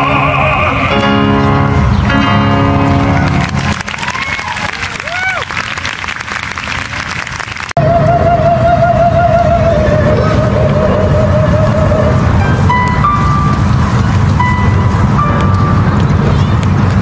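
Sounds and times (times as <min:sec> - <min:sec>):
man singing opera: 0:00.0 - 0:01.2, 0:07.8 - 0:12.2
piano: 0:00.0 - 0:05.5, 0:07.8 - 0:17.0
audience applauding and cheering: 0:02.7 - 0:07.8.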